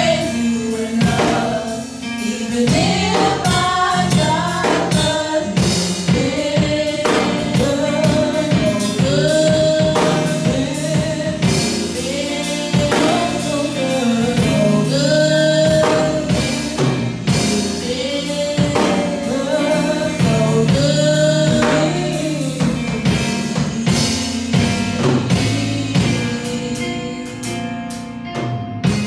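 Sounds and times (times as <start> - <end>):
women singing gospel: 0.0 - 27.8
accompaniment with steady beat: 0.0 - 29.0.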